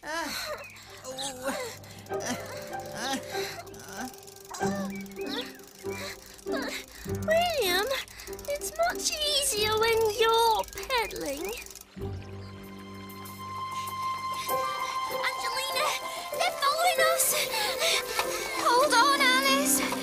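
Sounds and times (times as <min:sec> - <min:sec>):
background music: 0:00.7 - 0:20.0.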